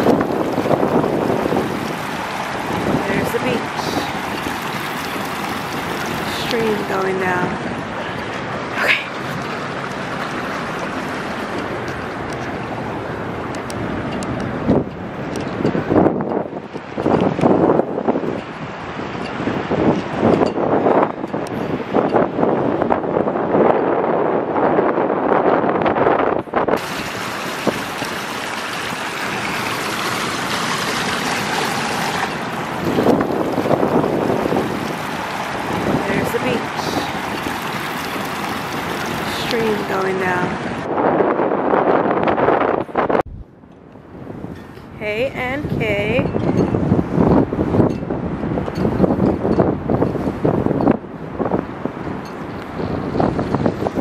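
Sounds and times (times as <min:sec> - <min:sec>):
ocean surf rushing: 0:00.0 - 0:43.2
wind buffeting microphone: 0:00.0 - 0:54.0.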